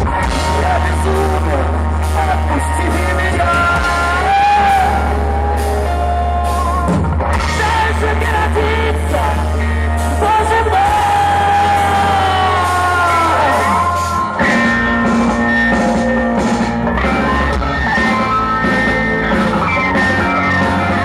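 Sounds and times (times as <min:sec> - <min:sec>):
heavy rock band playing: 0:00.0 - 0:21.0.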